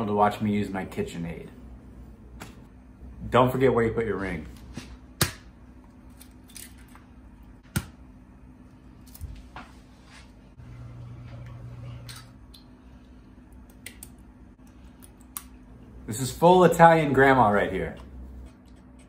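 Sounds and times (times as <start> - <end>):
low hum: 0.0 - 19.0.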